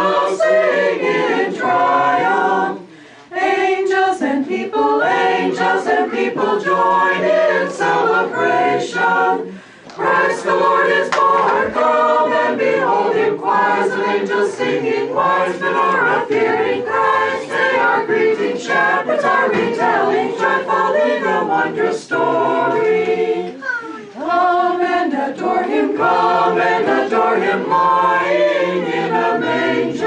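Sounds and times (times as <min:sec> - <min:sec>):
women's choir singing a cappella: 0:00.0 - 0:30.0.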